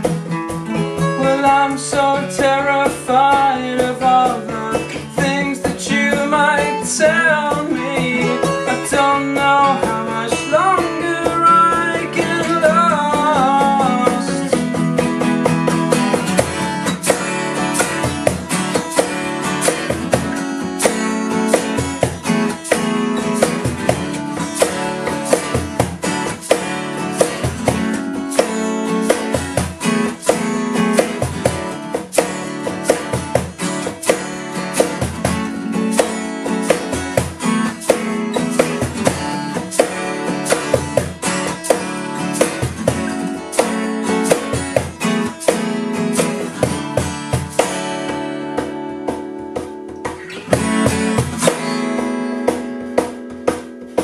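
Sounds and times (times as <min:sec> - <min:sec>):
acoustic guitars strumming: 0:00.0 - 0:54.0
shaker and cajon beat: 0:00.0 - 0:54.0
man singing: 0:01.0 - 0:15.0.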